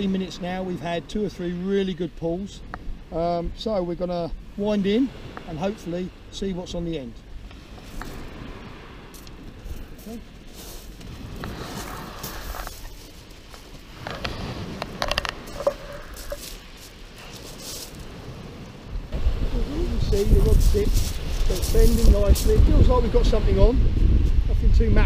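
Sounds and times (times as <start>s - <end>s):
footsteps on shingle: 9.0s - 18.4s, 20.1s - 22.7s
fishing rod handling: 10.5s - 17.8s.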